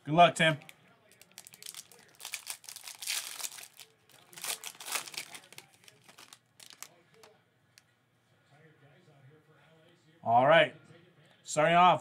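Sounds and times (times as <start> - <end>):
foil wrapper crinkling: 0.6 - 7.3.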